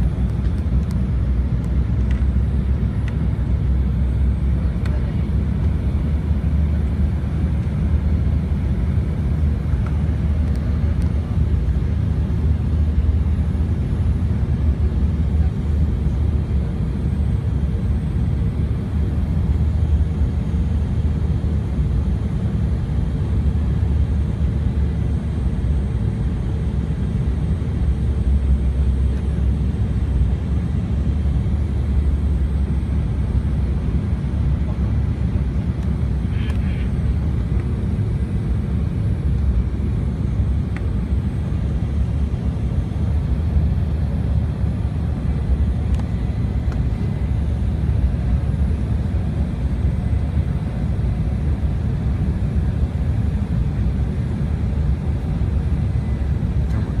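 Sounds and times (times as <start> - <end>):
jet engines rumbling: 0.0 - 57.0.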